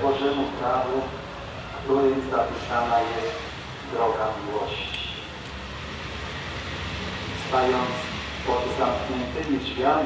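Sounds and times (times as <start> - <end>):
low rumble of city traffic: 0.0 - 10.0.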